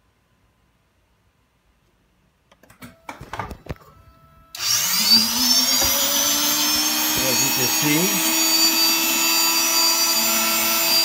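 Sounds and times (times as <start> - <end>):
electric motor whining: 4.6 - 11.0.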